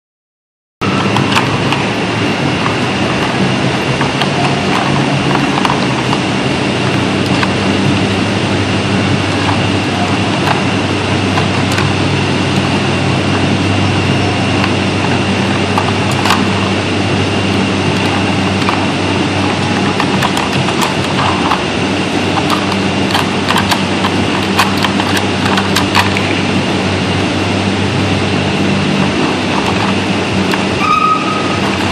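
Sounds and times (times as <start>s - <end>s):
loud steady machine hum: 0.8s - 31.9s
steady noise with high whine: 0.8s - 31.9s
plastic puzzle feeder clacking: 4.0s - 6.2s, 15.8s - 16.5s, 19.6s - 21.6s, 22.4s - 26.4s, 29.0s - 30.8s, 31.6s - 31.9s.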